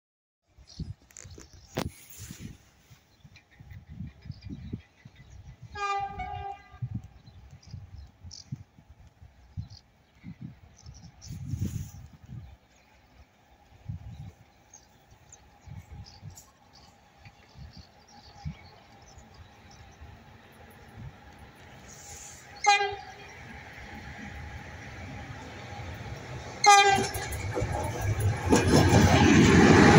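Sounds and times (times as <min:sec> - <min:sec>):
train rumble: 0:01.8 - 0:29.9
distant locomotive horn: 0:05.7 - 0:07.0, 0:21.9 - 0:23.5, 0:26.6 - 0:27.3.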